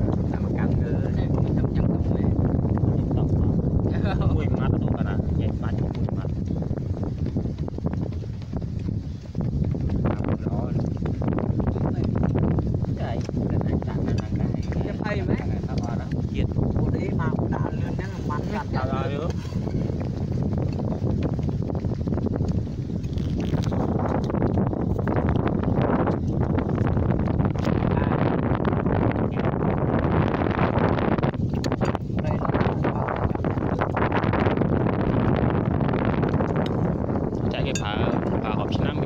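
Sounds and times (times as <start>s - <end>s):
wind noise on microphone: 0.0s - 39.0s
men talking: 0.1s - 6.4s, 10.0s - 11.0s, 12.8s - 19.7s, 27.6s - 28.4s, 37.4s - 39.0s.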